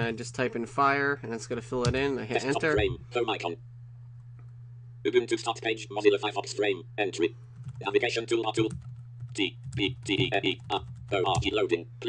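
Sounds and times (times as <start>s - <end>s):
steady low hum: 0.0s - 12.0s
synthetic voice speaking letters: 5.1s - 8.8s, 9.4s - 11.9s
computer keyboard typing: 7.6s - 11.6s.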